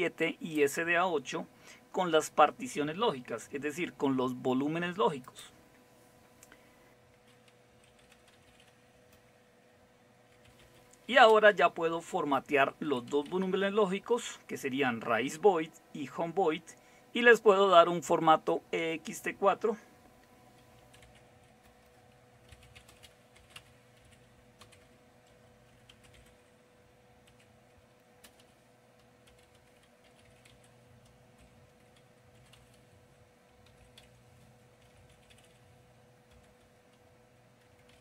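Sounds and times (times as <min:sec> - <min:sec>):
faint steady hum: 0:00.0 - 0:38.0
keyboard typing: 0:06.4 - 0:09.2, 0:10.3 - 0:11.5, 0:12.8 - 0:13.7, 0:20.5 - 0:38.0.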